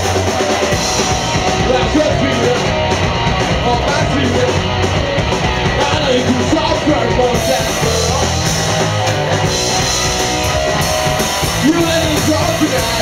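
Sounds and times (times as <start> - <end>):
live rock band playing: 0.0 - 13.0
man singing into microphone: 1.6 - 2.7, 3.6 - 4.6, 5.8 - 8.5, 11.6 - 13.0.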